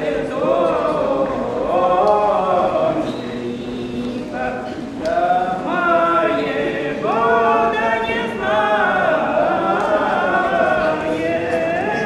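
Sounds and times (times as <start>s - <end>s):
woman and man singing unaccompanied: 0.0s - 12.0s.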